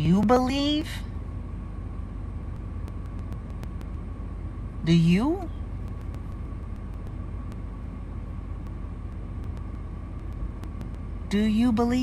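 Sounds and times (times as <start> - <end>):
low background rumble: 0.0 - 12.0
faint ticks: 2.6 - 4.0.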